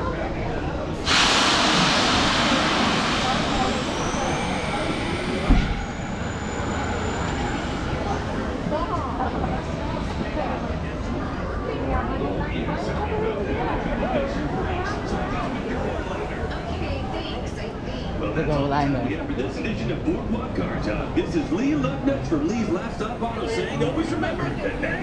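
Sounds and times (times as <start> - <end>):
crowd chatter: 0.0 - 25.0
loud hiss of venting air: 1.0 - 5.6.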